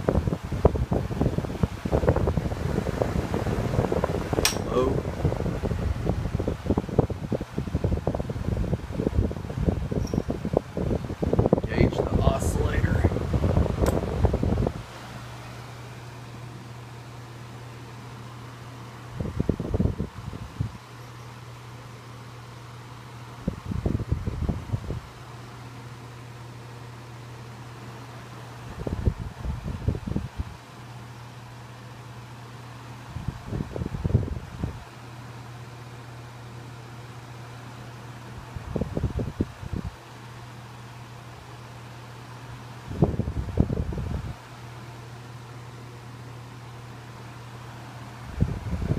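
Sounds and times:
air buffeting microphone: 0.0s - 16.0s, 19.0s - 20.8s, 23.3s - 25.1s, 28.6s - 30.6s, 33.0s - 34.8s, 42.8s - 44.4s, 48.2s - 48.9s
desk fan running: 0.0s - 48.9s.

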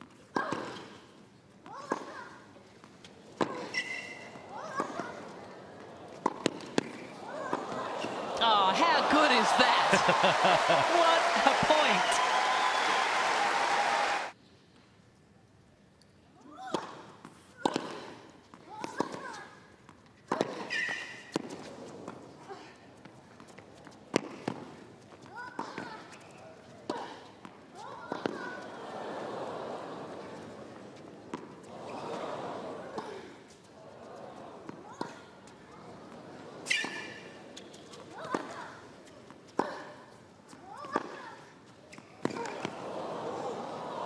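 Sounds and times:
tennis ball bounces: 6.1s - 8.3s
faint crowd murmur: 7.0s - 12.6s, 26.0s - 40.1s
crowd applause and cheering: 7.6s - 14.4s.

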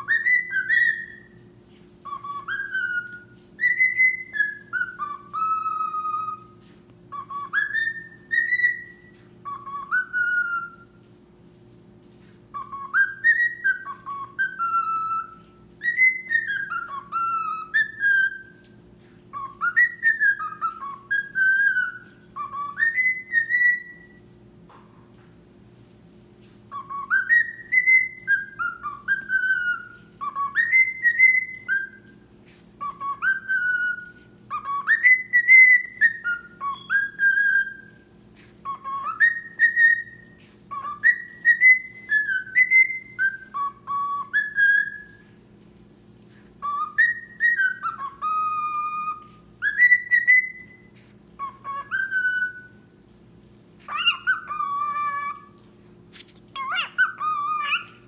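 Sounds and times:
cockatiel whistling: 0.0s - 11.1s, 12.5s - 24.3s, 26.7s - 45.4s, 46.3s - 53.0s, 53.8s - 58.0s.

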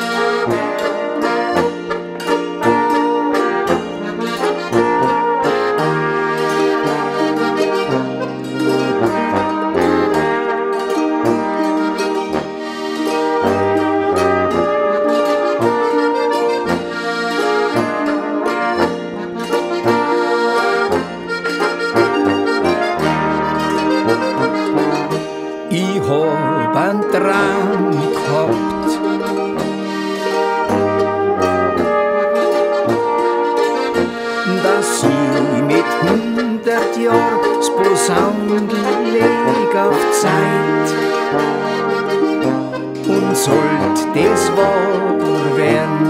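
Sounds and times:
folk brass band with accordion: 0.0s - 46.0s.

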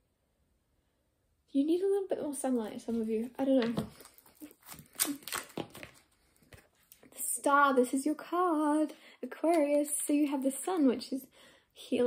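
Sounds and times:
cards rustling and tapping: 3.0s - 7.0s.

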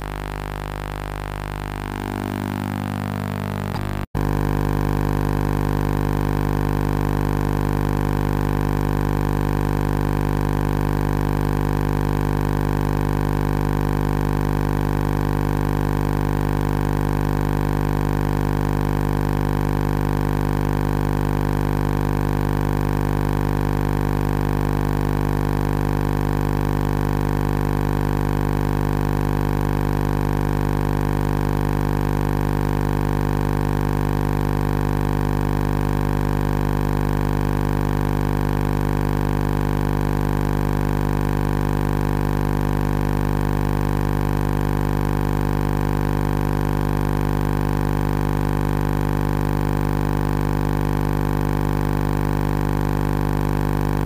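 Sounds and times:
steady low hum: 0.0s - 12.6s.

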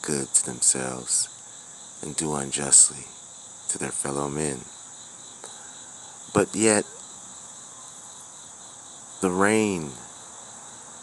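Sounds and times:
crickets trilling: 0.0s - 11.0s.

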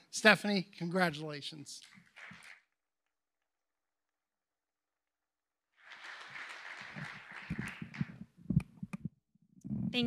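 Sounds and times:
audience applause: 1.8s - 2.7s, 5.8s - 8.4s
microphone being handled: 7.0s - 10.0s.

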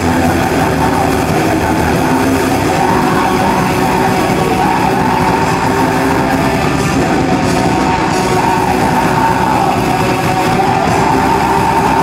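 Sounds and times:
distorted electric guitar: 0.0s - 12.0s
metal band playing live: 0.0s - 12.0s.

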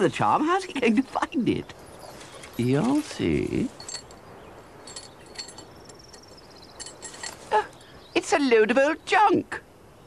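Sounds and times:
metal junk clinking and rattling: 3.7s - 7.5s.

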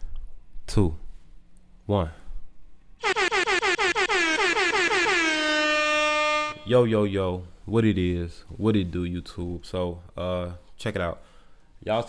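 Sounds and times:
air horn blasts: 3.0s - 6.9s.

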